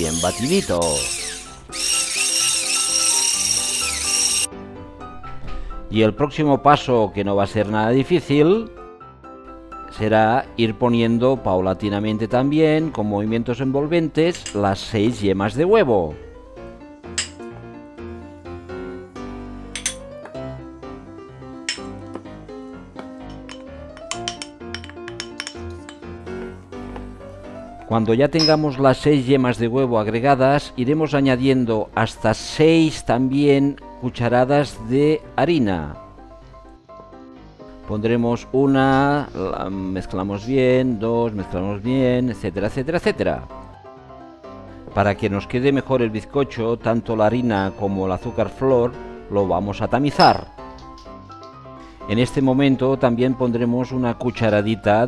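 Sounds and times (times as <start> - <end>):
electric hand mixer whining: 0.0 - 4.5
background music: 0.0 - 55.0
spatula clinking against bowl: 28.4 - 28.8, 50.2 - 50.5.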